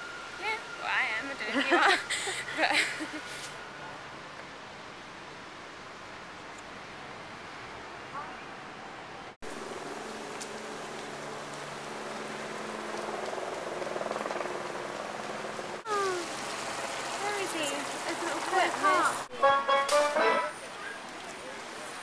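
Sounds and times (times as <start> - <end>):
outdoor noise: 0.0 - 22.0
people's voices: 15.9 - 16.3, 17.2 - 22.0.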